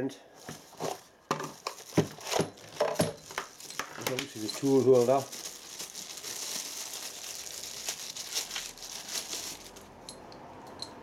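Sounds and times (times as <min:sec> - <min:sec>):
plastic bag crinkling: 0:00.4 - 0:09.9.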